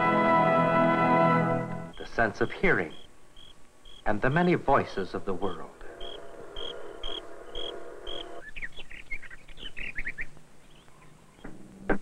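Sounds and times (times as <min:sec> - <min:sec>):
steady droning chorus: 0:05.0 - 0:08.4.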